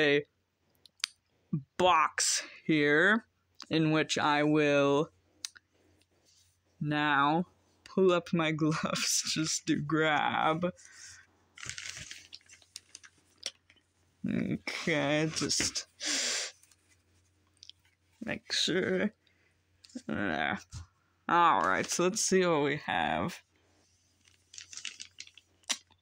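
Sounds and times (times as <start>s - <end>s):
faint rustles and scrapes: 5.7s - 6.8s, 10.7s - 18.4s, 23.4s - 25.6s.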